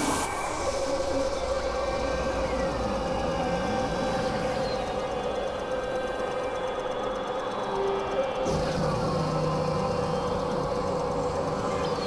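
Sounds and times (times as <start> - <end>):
synthesizer drone: 0.0 - 12.0.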